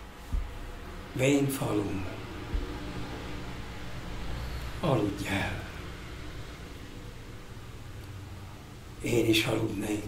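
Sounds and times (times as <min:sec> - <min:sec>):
low hum and hiss: 0:00.0 - 0:10.0
faint low knock: 0:00.3 - 0:00.8, 0:02.4 - 0:03.1.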